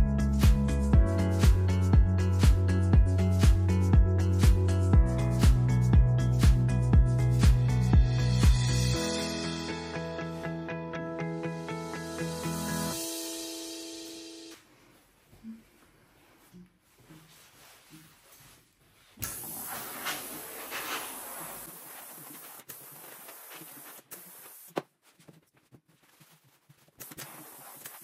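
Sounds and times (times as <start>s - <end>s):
steam iron hissing: 19.2s - 24.8s, 27.0s - 28.0s.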